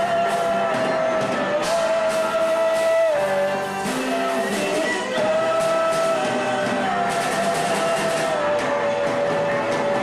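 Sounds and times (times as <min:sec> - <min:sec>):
harmonica long note: 0:00.0 - 0:10.0.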